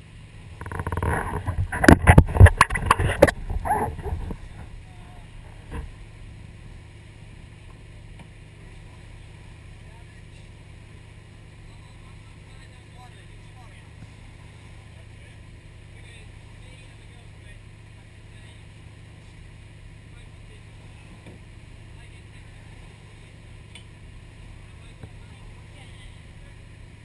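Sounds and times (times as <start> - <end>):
motorboat engine humming: 0.0 - 27.0
rushing wind: 0.4 - 6.0.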